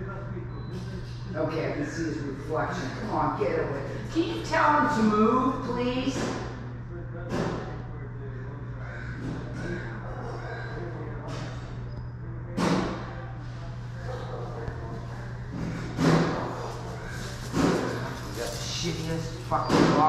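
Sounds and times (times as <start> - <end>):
muffled voices: 0.0 - 20.0
steady low hum: 0.0 - 20.0.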